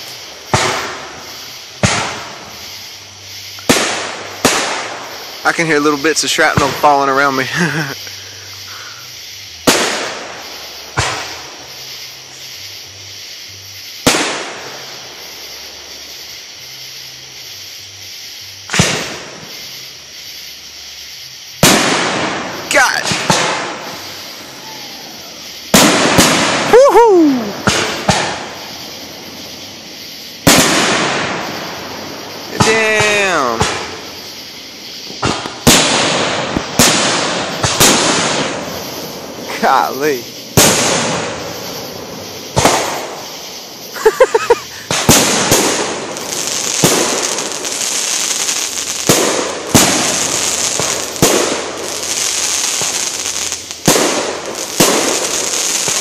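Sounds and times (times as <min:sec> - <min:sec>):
firework shells bursting: 0:00.0 - 0:09.0, 0:09.6 - 0:12.4, 0:13.9 - 0:15.4, 0:18.6 - 0:19.8, 0:21.5 - 0:56.0.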